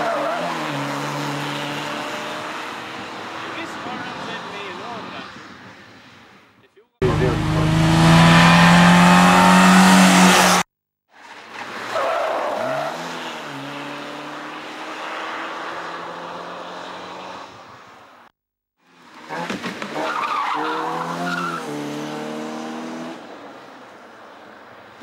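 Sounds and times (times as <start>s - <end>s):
race car engine revving: 7.0s - 10.6s.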